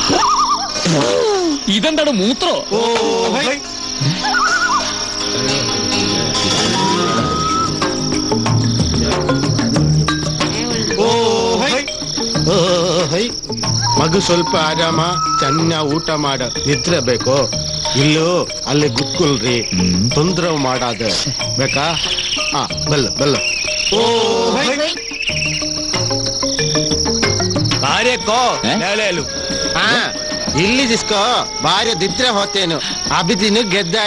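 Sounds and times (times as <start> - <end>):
crickets chirping: 0.0 - 34.0
people talking: 10.5 - 11.9, 12.5 - 25.0, 27.8 - 34.0.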